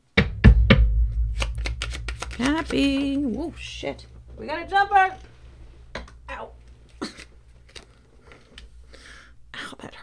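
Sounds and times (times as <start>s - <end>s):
woman speaking: 2.4s - 5.3s, 6.2s - 6.7s, 9.5s - 10.0s
woman whispering: 9.5s - 10.0s.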